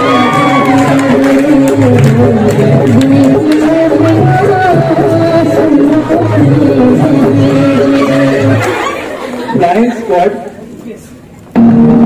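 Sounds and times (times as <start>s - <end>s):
music over sound system: 0.0s - 9.7s, 11.5s - 12.0s.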